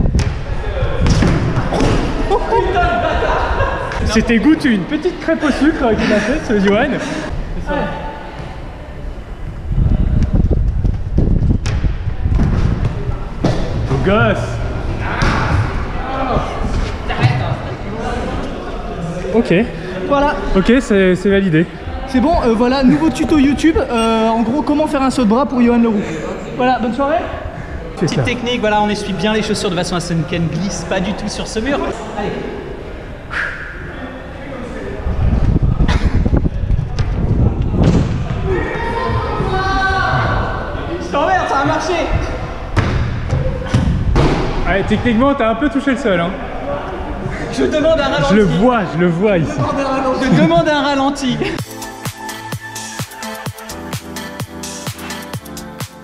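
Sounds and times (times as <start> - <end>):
wind rumble on microphone: 0.0 - 1.7, 9.0 - 14.8, 34.9 - 40.8.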